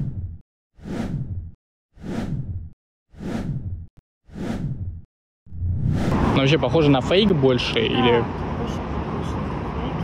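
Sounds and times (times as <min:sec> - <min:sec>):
whoosh sound effects: 0:05.6 - 0:06.4.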